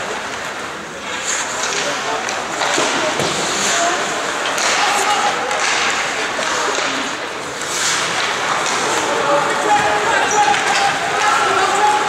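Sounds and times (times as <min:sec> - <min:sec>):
skates scraping ice: 0:00.0 - 0:12.0
people shouting: 0:04.6 - 0:05.6, 0:08.8 - 0:12.0.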